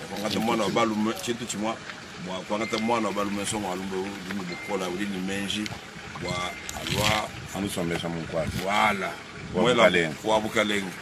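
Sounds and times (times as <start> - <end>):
man speaking: 0.0 - 11.0
outdoor background noise: 0.0 - 11.0.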